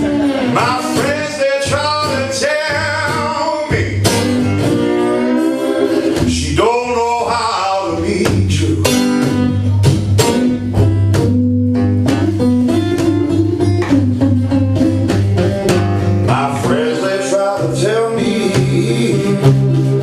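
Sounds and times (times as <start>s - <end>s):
man singing: 0.0s - 4.2s, 6.2s - 9.4s, 16.2s - 20.0s
acoustic guitar strumming: 0.0s - 20.0s.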